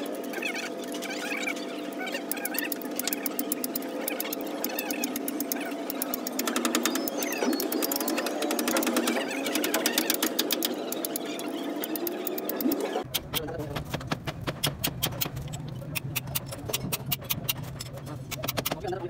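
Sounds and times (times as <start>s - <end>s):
machine clattering with rapid clicks: 0.0s - 19.0s.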